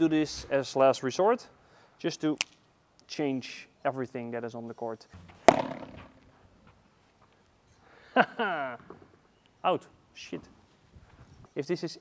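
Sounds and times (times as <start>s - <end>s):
racket striking ball: 5.2s - 6.3s.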